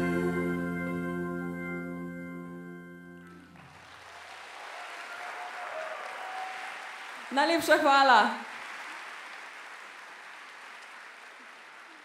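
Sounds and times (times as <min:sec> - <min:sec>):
audience applauding: 0:03.3 - 0:12.0.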